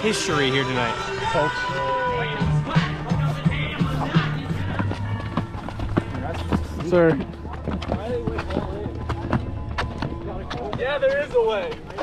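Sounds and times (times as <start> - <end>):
voices chattering: 0.0 - 12.0
running footsteps on rubber track: 2.0 - 12.0.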